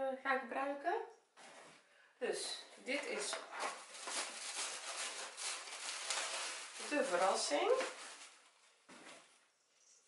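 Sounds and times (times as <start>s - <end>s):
tissue paper and cardboard rustling: 2.8s - 9.4s.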